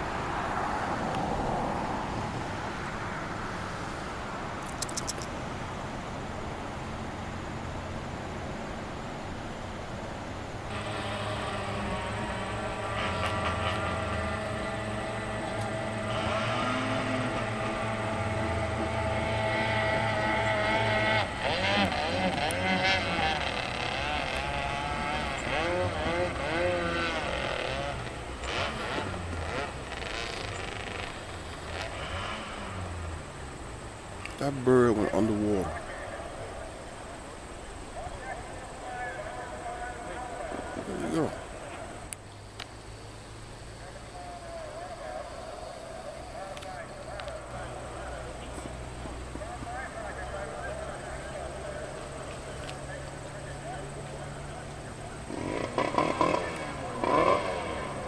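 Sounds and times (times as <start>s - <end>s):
brief clicks: 4.6s - 5.3s
motor engine humming: 10.6s - 58.0s.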